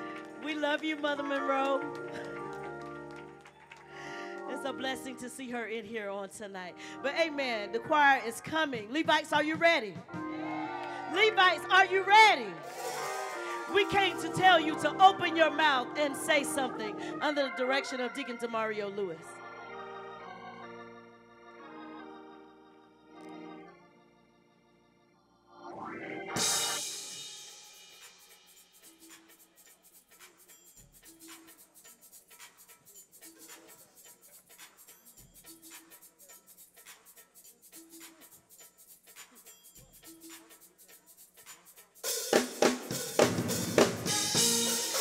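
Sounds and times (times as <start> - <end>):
organ playing chords: 0.0 - 5.5, 10.1 - 27.2, 42.8 - 45.0
drum hits with cymbal crashes: 12.6 - 13.8, 26.4 - 29.2, 42.1 - 45.0.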